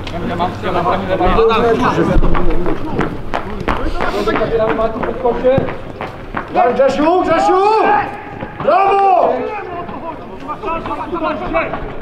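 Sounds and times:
men shouting: 0:06.7 - 0:11.6.

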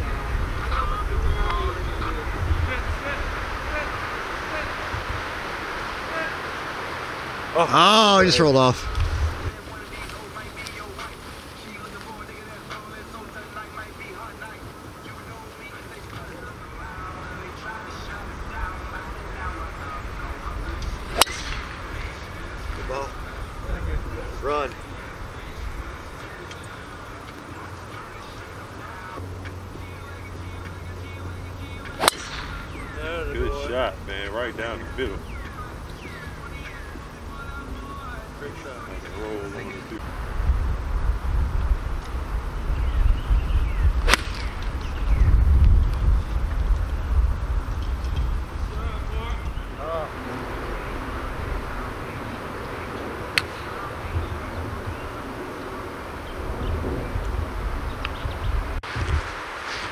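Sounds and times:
wind on microphone: 0:00.0 - 0:06.1, 0:08.8 - 0:09.6, 0:39.9 - 0:59.9
faint distant voices: 0:00.0 - 0:40.3
golf club striking ball: 0:21.1 - 0:21.7, 0:32.0 - 0:32.9, 0:44.0 - 0:45.0.

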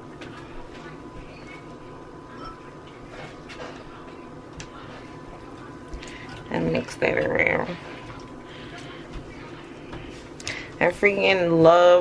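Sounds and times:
low steady kitchen background: 0:00.0 - 0:12.0.

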